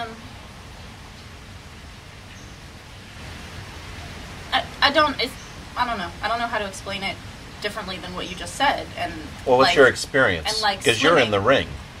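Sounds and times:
soft hiss: 0.0s - 12.0s
faint high tone: 10.5s - 11.5s.

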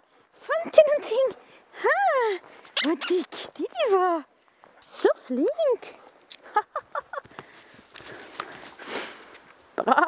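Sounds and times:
footsteps rustling through dry grass: 7.1s - 9.6s.

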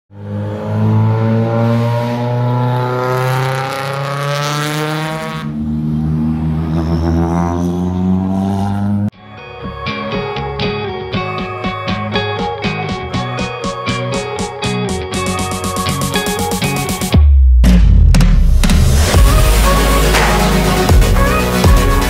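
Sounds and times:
rally car engine revving: 0.1s - 9.1s
music: 9.1s - 22.0s.

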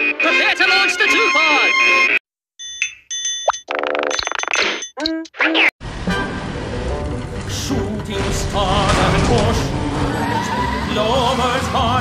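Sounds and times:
car engine and tyre rumble: 5.8s - 12.0s.

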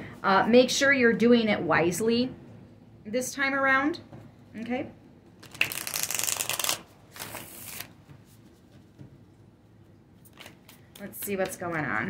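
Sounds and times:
cards being shuffled: 5.4s - 9.1s, 10.2s - 11.4s.

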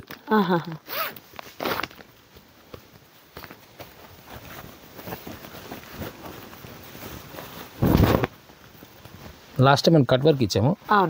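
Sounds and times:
plastic packaging rustle: 3.2s - 9.7s.

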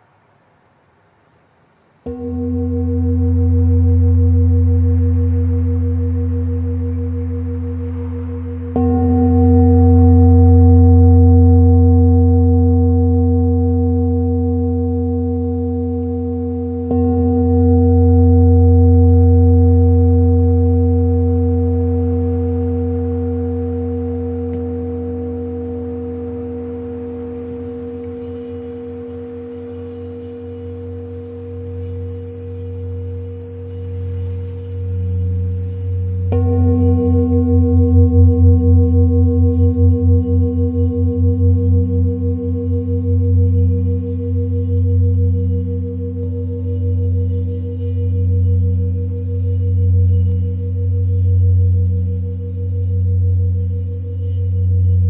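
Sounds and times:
crickets chirping: 0.0s - 55.0s
singing bowls ringing: 2.0s - 55.0s.

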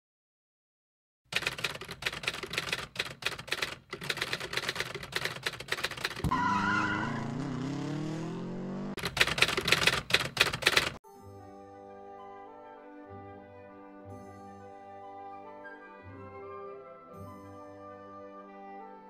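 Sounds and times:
rapid irregular clicking: 1.3s - 6.3s, 9.0s - 11.0s
small vehicle engine accelerating: 6.2s - 9.0s.

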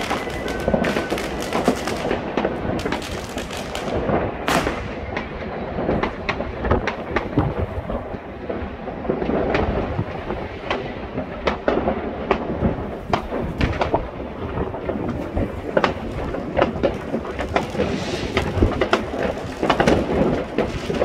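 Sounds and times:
hissing firework burst: 0.0s - 5.2s, 15.7s - 21.0s
fireworks and firecrackers banging: 0.0s - 21.0s
low rumble of distant explosions: 0.0s - 21.0s.

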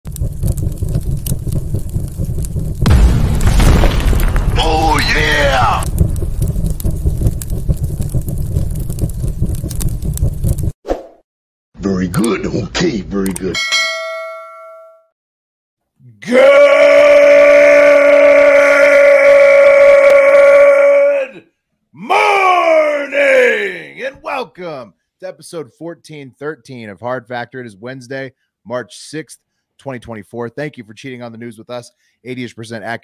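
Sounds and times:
low explosion rumble with crackles: 0.0s - 10.8s
loud boom dropping in pitch: 2.8s - 7.6s.

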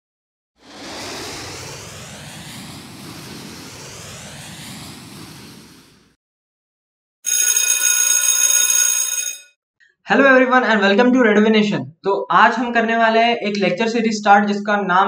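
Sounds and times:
rocket launch whoosh: 0.6s - 6.2s
bright ringing tone: 7.3s - 9.5s.

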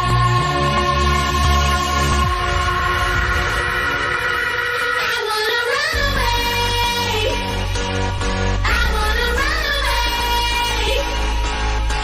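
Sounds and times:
deep bass: 0.0s - 4.3s, 5.9s - 12.0s.

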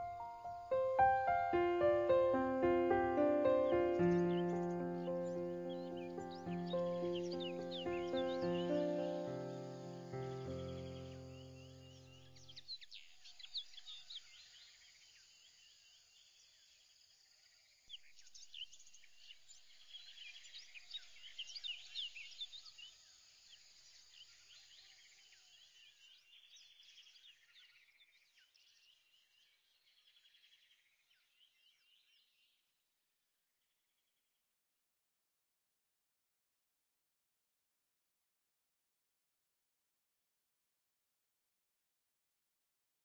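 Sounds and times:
music chords: 0.0s - 11.0s
birds chirping and trilling: 0.0s - 14.7s.

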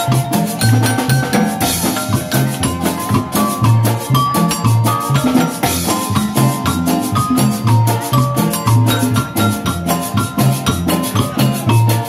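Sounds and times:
double bass: 0.0s - 12.0s
drum kit dance beat: 0.0s - 12.0s
marimba: 0.0s - 12.0s.

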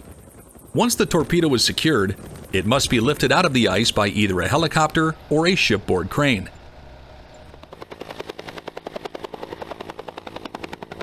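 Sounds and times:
helicopter rotor blades chopping: 0.0s - 11.0s.

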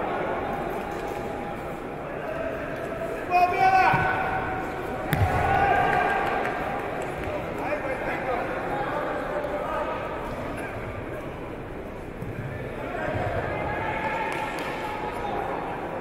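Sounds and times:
indistinct voices in sports hall: 0.0s - 16.0s.

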